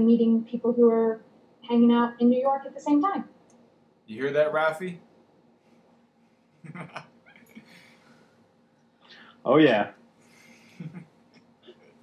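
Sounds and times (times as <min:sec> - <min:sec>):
faint animal call: 0:06.7 - 0:07.9.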